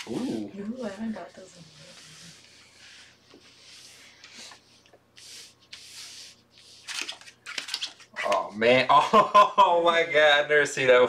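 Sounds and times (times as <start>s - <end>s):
cards sliding on felt: 1.7s - 7.8s.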